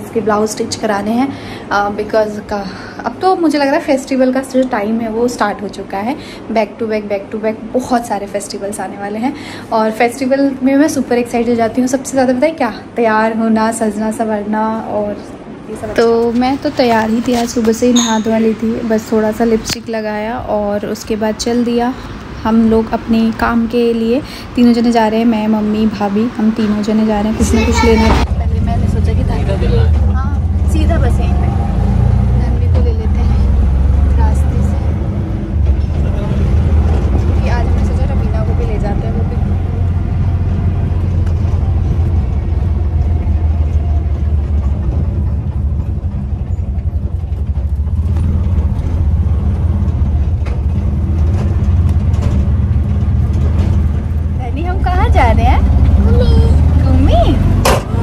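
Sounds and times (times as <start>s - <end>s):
voices: 0.0s - 47.5s, 53.8s - 58.0s
auto-rickshaw engine rumble: 0.0s - 58.0s
road noise: 0.0s - 58.0s.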